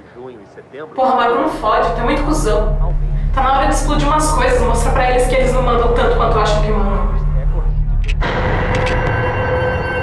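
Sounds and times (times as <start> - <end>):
steady hum: 0.0 - 10.0
low drone: 1.0 - 10.0
rough low rumble: 1.0 - 10.0.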